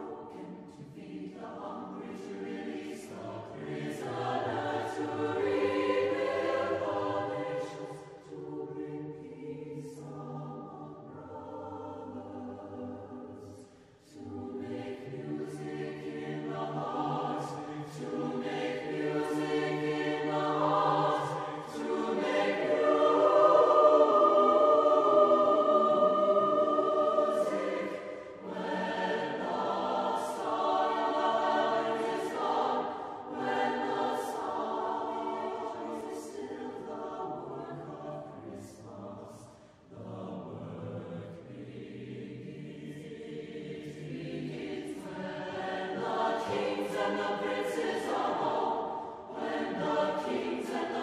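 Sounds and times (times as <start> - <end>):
choir singing slow choral piece: 0.0 - 51.0
singers breathing: 13.6 - 14.0.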